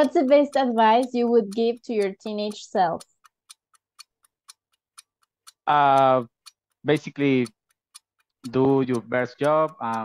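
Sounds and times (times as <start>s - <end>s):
clock ticking: 0.0s - 10.0s.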